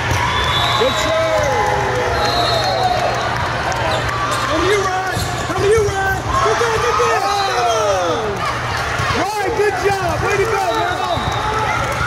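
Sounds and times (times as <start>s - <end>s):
low hall hum: 0.0s - 12.0s.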